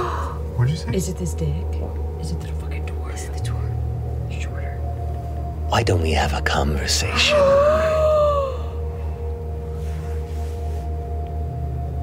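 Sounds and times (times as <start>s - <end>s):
dark ambient droning music: 0.0s - 12.0s
person gasping ooh: 7.1s - 8.8s.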